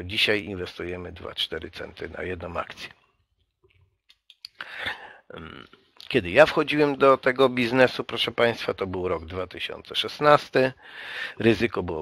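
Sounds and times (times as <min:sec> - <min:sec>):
lip clicks: 0:03.6 - 0:04.7
short breaths: 0:04.5 - 0:05.3, 0:10.8 - 0:11.4.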